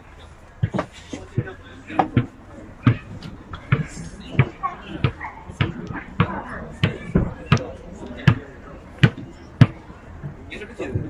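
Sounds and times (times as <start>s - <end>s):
background voices: 0.0s - 11.0s
sharp regular thumps: 0.6s - 11.0s.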